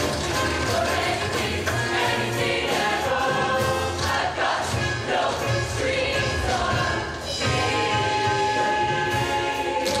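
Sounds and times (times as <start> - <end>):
choir singing: 0.3 - 10.0.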